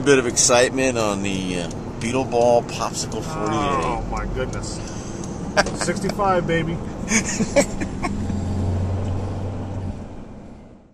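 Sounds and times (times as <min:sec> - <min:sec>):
car engine and road drone: 0:00.0 - 0:10.9.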